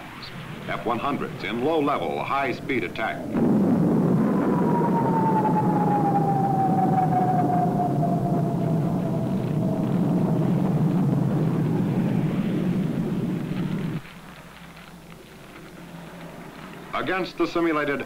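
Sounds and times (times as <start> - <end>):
jet aircraft roar and whine: 0.0 - 14.2.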